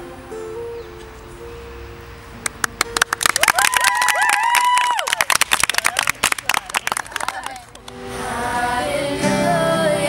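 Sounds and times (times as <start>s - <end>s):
group clapping: 2.4s - 8.1s
voices cheering: 3.2s - 7.8s.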